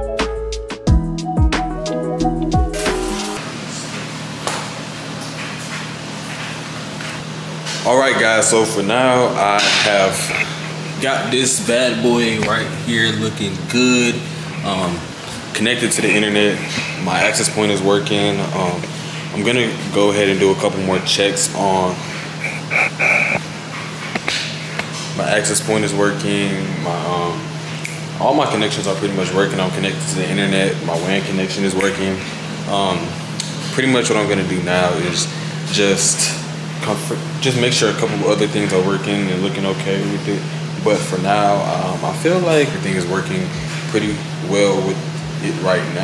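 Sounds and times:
washing machine humming: 2.5s - 46.0s
household machine humming: 7.2s - 23.5s.

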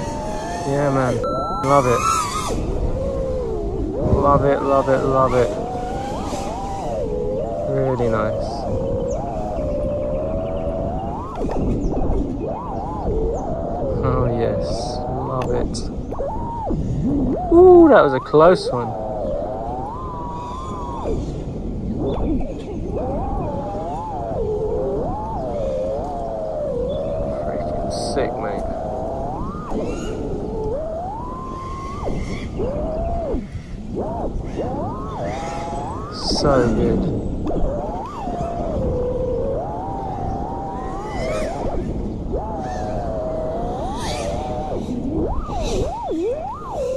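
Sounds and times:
drone motors whining: 0.0s - 46.9s
wind noise: 0.0s - 46.9s.

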